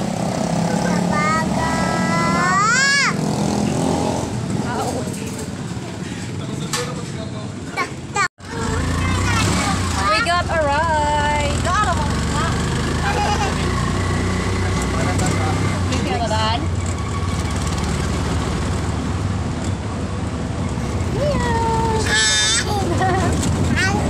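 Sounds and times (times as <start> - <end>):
vehicle engine rumble: 0.0 - 24.0
small child's voice: 0.7 - 3.2, 7.8 - 10.2, 23.7 - 24.0.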